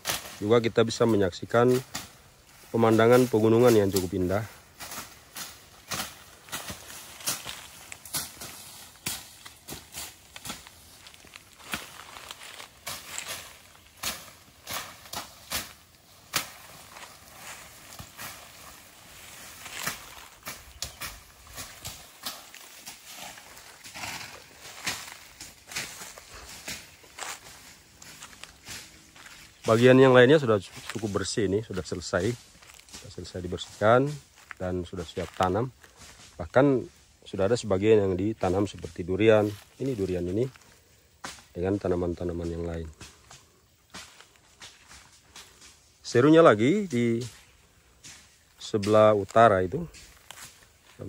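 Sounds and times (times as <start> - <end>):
dry leaves crunching: 0.0 - 51.0
footsteps through dry undergrowth: 0.0 - 51.0.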